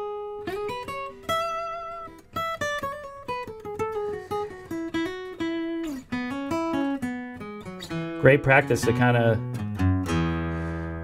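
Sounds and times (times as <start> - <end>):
acoustic guitar picked notes: 0.0 - 11.0.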